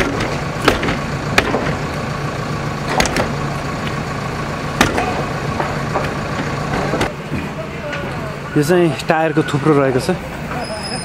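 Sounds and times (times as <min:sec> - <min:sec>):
sharp knocks: 0:00.0 - 0:01.8, 0:02.9 - 0:03.4
vehicle engine running: 0:00.0 - 0:11.0.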